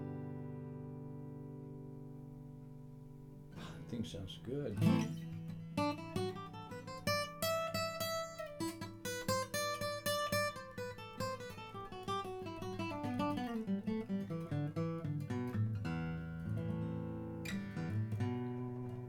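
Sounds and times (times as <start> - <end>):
acoustic guitar plucked notes: 0.0 - 19.0.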